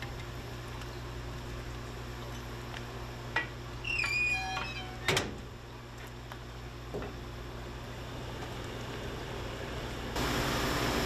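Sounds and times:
steady low hum: 0:00.0 - 0:11.0
hinges squealing: 0:03.8 - 0:05.4
metal door clanging shut: 0:04.0 - 0:05.4.

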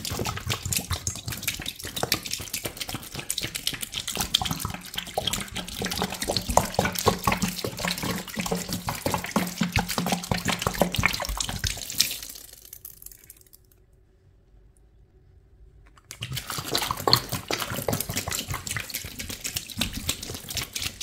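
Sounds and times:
liquid pouring and splashing: 0:00.0 - 0:13.8, 0:16.0 - 0:21.0.

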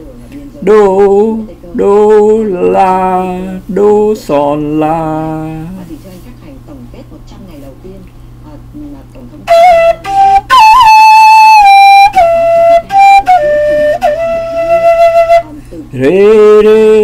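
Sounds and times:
flute playing high notes: 0:09.5 - 0:15.6.

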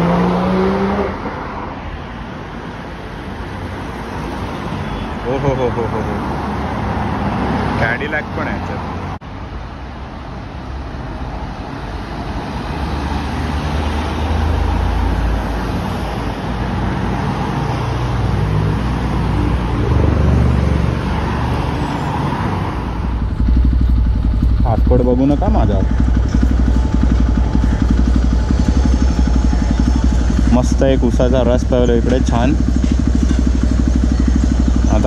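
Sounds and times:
cars driving past: 0:00.0 - 0:35.0
deep engine rumble: 0:19.3 - 0:35.0.

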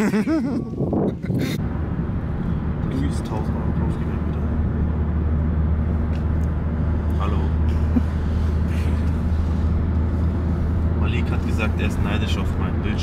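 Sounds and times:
car engine and tyre rumble: 0:00.0 - 0:13.0
road noise: 0:00.0 - 0:13.0.

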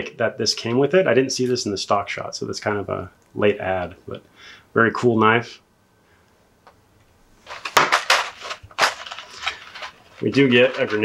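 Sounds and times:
plastic tray crackling and clicking: 0:07.5 - 0:11.0.

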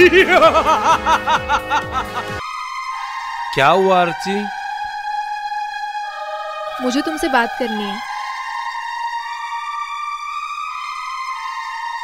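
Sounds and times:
sustained film score chord: 0:00.0 - 0:12.0.

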